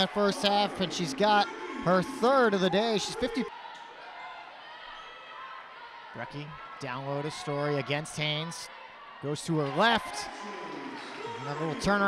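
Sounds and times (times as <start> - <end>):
faint basketball court sounds: 0.0 - 12.0
murmur of crowd voices: 0.0 - 12.0.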